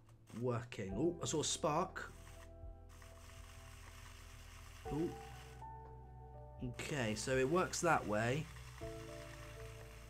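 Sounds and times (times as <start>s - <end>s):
model locomotive motor humming: 2.1s - 5.7s, 6.9s - 10.0s.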